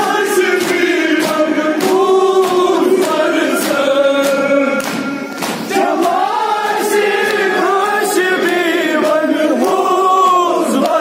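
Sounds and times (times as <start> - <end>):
amplified lead voice singing: 0.0 - 11.0
men singing mournful chorus: 0.0 - 11.0
sharp rhythmic beats: 0.0 - 11.0.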